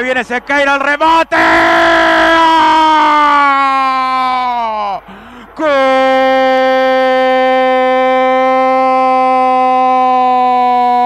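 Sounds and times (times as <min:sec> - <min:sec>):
commentator shouting goal cry: 0:00.6 - 0:05.0.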